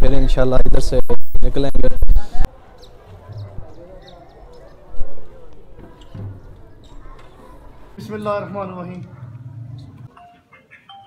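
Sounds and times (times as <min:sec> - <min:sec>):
man's voice: 0:00.0 - 0:02.4
faint outdoor crowd murmur: 0:01.5 - 0:11.0.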